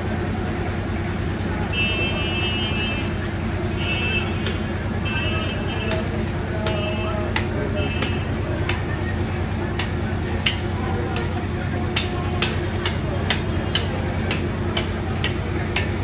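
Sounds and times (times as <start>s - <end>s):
low hum of shop: 0.0s - 16.0s
sharp knocks and clicks: 11.9s - 16.0s.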